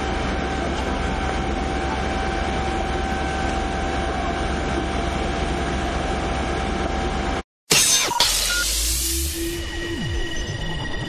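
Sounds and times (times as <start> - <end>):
large engine running: 0.0 - 7.4.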